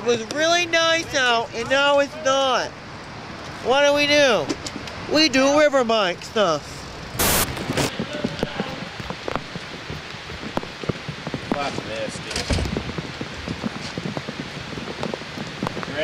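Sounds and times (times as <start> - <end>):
rain falling on hard surfaces: 0.0 - 16.0
short sharp burst: 7.2 - 7.9.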